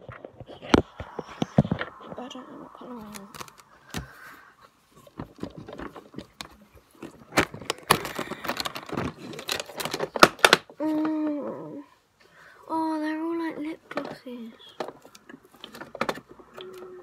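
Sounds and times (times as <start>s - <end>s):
plastic makeup cases rattling: 5.0s - 10.8s, 13.9s - 16.6s
person humming: 10.8s - 11.9s.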